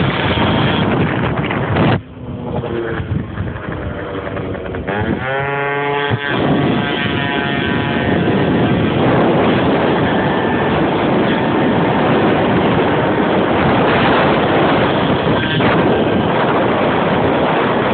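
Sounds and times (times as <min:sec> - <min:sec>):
moped engine running: 0:00.0 - 0:17.9
wind noise on microphone: 0:00.0 - 0:17.9.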